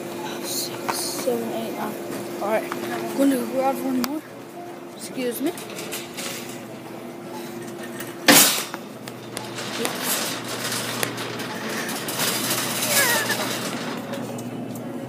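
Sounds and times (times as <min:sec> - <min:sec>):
store background noise: 0:00.0 - 0:15.0
faint voices: 0:09.2 - 0:14.4.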